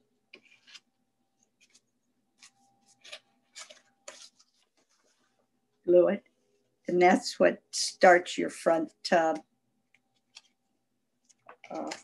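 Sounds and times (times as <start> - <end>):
cardstock cards rustling: 0.3 - 5.4, 11.2 - 12.0.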